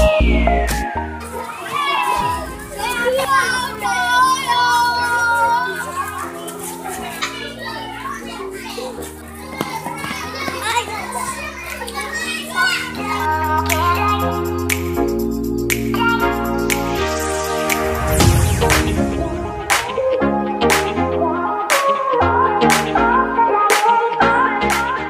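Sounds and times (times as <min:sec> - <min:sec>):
background music: 0:00.0 - 0:25.0
children chattering and calling: 0:01.2 - 0:24.6.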